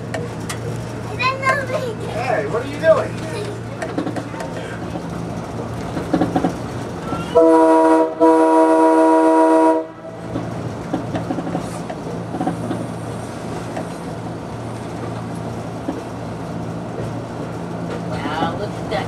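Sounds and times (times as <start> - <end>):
wheels clattering on rails: 0.0 - 8.1, 10.1 - 19.0
railcar low hum: 0.0 - 19.0
railcar air horn: 7.3 - 10.1.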